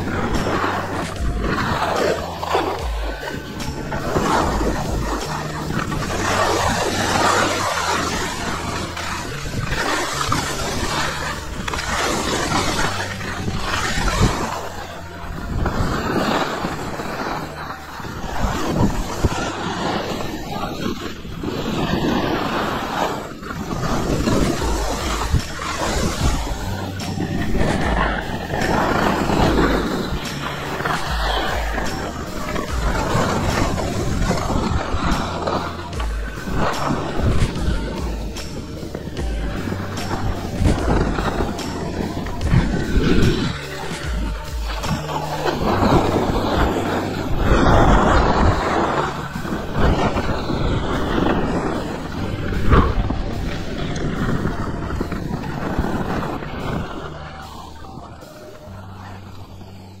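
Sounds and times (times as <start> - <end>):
music with stepping bass line: 0.0 - 20.1, 23.6 - 60.0
skis scraping over snow: 0.0 - 60.0
wind rushing over microphone: 0.0 - 60.0.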